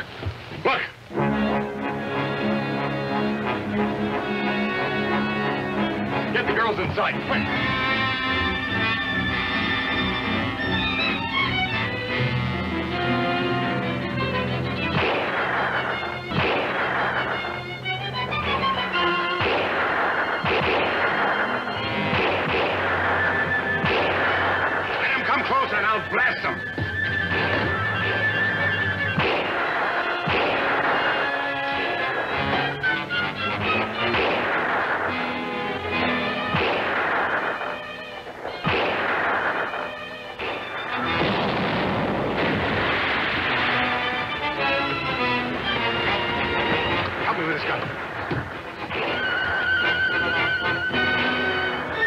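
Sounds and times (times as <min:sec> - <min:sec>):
dramatic orchestral music: 0:00.7 - 0:52.0
cannon and gunfire blasts: 0:14.9 - 0:17.6, 0:19.2 - 0:26.0, 0:27.3 - 0:28.2, 0:29.1 - 0:32.8, 0:33.6 - 0:45.3, 0:46.4 - 0:49.8.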